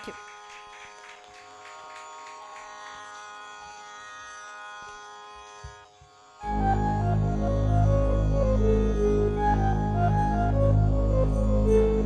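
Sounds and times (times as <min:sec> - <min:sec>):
steady drone with overtones: 0:06.4 - 0:12.0.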